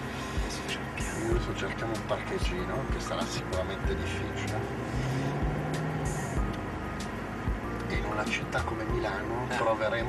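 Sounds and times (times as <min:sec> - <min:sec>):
background music: 0:00.0 - 0:10.0
car engine running: 0:00.0 - 0:10.0.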